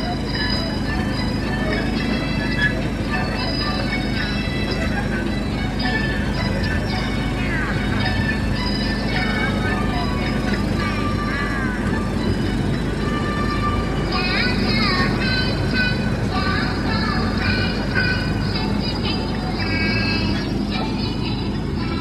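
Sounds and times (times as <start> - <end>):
music: 0.0 - 22.0
small train rumbling: 0.0 - 22.0
voices: 0.0 - 22.0.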